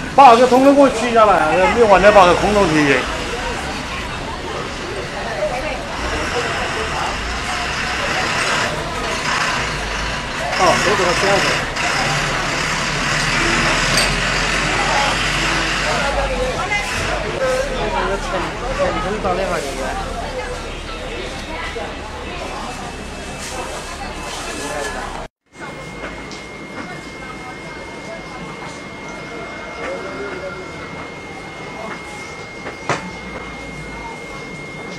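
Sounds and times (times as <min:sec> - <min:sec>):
dump truck engine rumbling: 0:00.0 - 0:25.3
steady background noise: 0:00.0 - 0:34.9.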